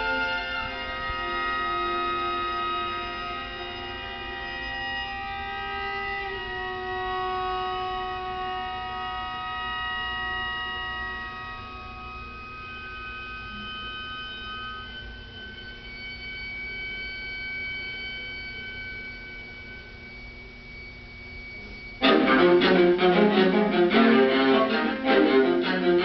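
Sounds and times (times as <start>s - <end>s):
viola quintet soft chords: 0.0s - 12.0s, 22.0s - 26.0s.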